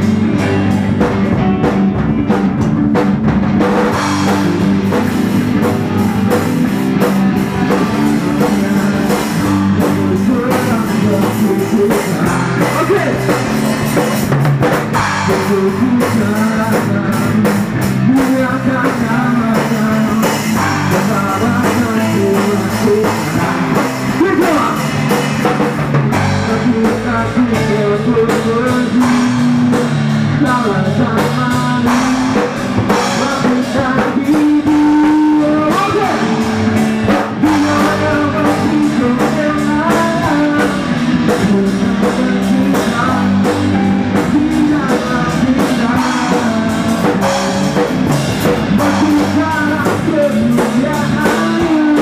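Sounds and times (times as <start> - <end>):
drum kit beat: 0.0 - 52.0
electric guitars: 0.0 - 52.0
live rock band playing: 0.0 - 52.0.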